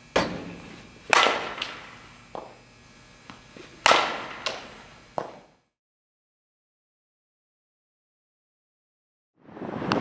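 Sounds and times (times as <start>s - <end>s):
bat hitting ball cracks: 0.2s - 2.6s, 3.6s - 5.5s.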